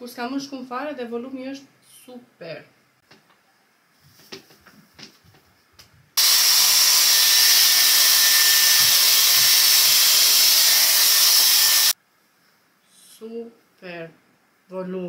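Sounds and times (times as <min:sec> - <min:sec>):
hot-air styler blowing: 0:06.2 - 0:12.0.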